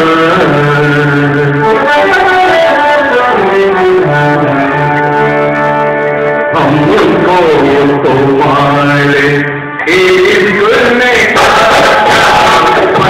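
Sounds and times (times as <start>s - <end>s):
live band playing instrumental: 0.0s - 13.0s.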